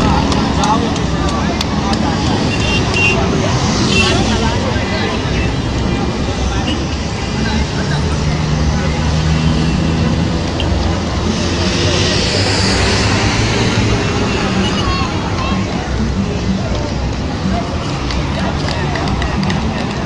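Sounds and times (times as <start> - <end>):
vehicle rushing past: 0.0 - 19.6
vehicle engines passing: 0.0 - 20.0.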